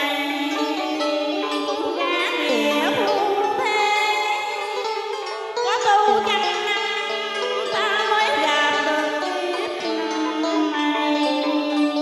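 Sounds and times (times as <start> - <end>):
plucked string instruments melody: 0.0 - 12.0.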